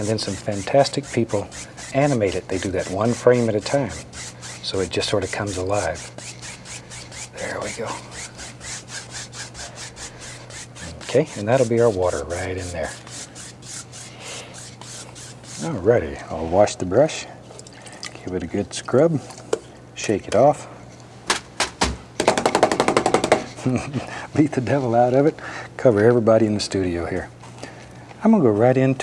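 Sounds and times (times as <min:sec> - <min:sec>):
brush scrubbing on canvas: 0:00.0 - 0:16.8.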